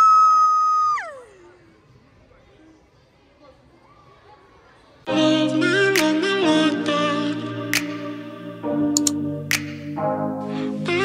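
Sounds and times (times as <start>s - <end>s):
high-pitched vocal squeal: 0.0s - 1.4s.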